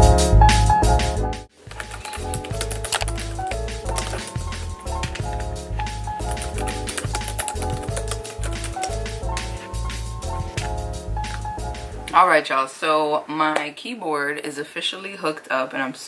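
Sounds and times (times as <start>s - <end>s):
background music with steady beat: 0.0s - 12.2s
clicky keyboard typing: 1.7s - 9.2s.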